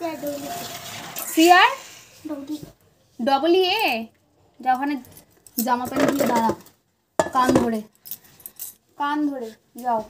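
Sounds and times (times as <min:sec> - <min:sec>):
small metal objects jingling: 0:08.0 - 0:08.8.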